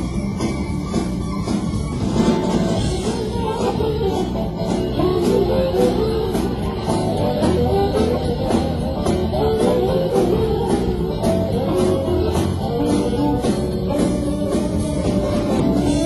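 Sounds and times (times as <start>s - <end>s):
bass: 0.0s - 16.0s
drums with cymbal beat: 0.0s - 16.0s
electric guitar lines: 0.0s - 16.0s.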